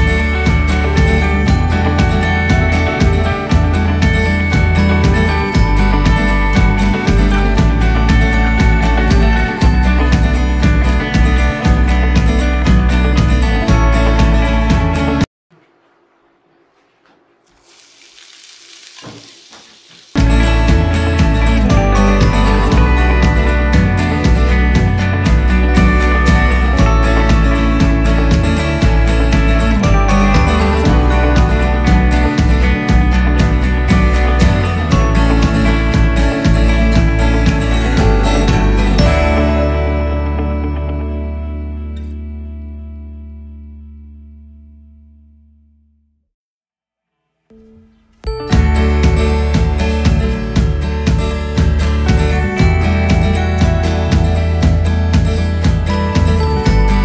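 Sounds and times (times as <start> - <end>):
loud guitar music: 0.0 - 15.3, 20.2 - 44.7, 48.2 - 57.0
onion sizzling in hot oil: 17.4 - 20.2
held music chord: 20.2 - 44.2.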